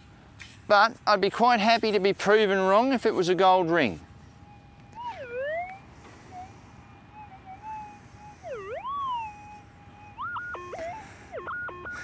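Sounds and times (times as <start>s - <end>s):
metal detector stepped tones: 4.5s - 12.0s
metal detector threshold tone: 4.6s - 12.0s.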